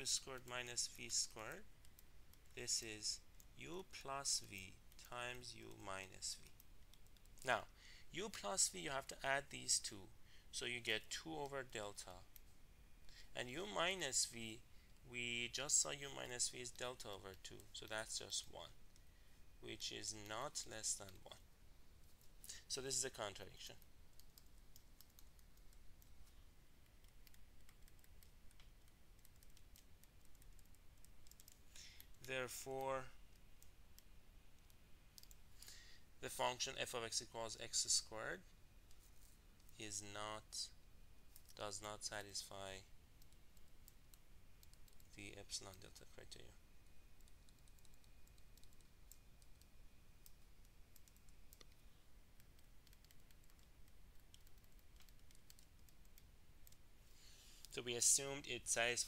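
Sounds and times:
low room hum: 0.0 - 59.0.

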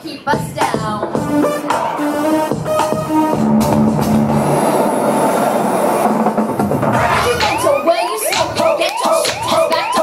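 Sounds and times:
loud electronic band music: 0.3 - 10.0.

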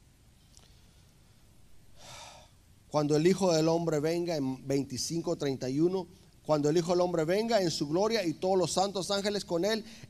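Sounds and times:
man's sharp intake of breath: 1.9 - 2.6
man speaking: 2.9 - 10.0.

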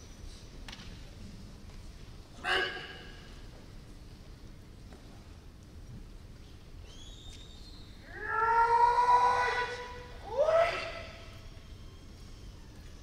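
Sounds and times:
person shouting: 2.4 - 3.2.

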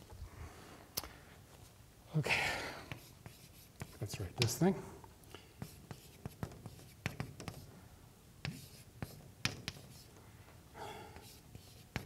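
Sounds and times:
chalk tapping and scraping on blackboard: 2.9 - 4.6, 5.6 - 7.7, 8.4 - 10.2, 11.2 - 12.0.

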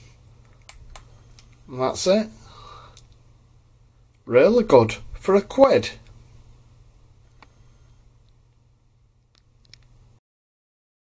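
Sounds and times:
steady low hum: 0.0 - 10.2.

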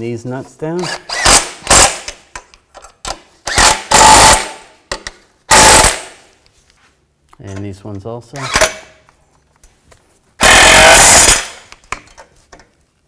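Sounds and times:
impact wrench hammering: 3.1 - 6.2, 10.4 - 11.7.

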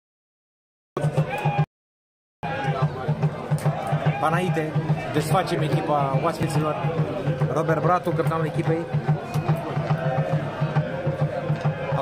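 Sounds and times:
rapid drumbeat: 1.0 - 1.6, 2.4 - 12.0.

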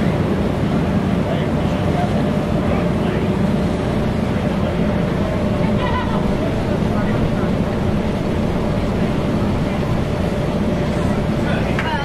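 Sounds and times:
boat engine rumble: 0.0 - 12.0
wind on microphone: 3.6 - 12.0
indistinct voices: 3.9 - 12.0.

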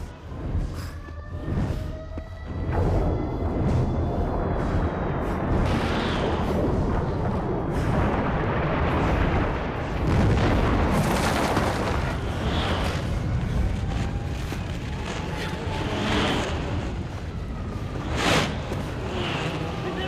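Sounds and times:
heavy rumble of explosions: 0.0 - 20.0.

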